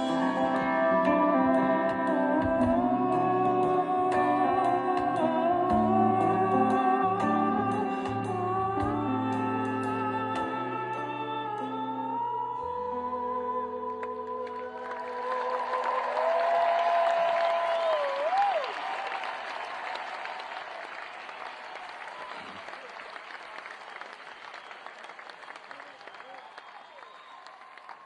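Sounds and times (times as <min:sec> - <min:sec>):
rock band held notes: 0:00.0 - 0:12.4
high held note wavering: 0:00.0 - 0:13.7
audience applauding and cheering: 0:14.0 - 0:28.0.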